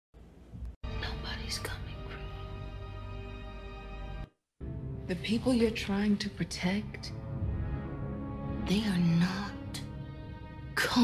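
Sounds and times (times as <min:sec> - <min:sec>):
low dramatic music: 0:00.5 - 0:11.0.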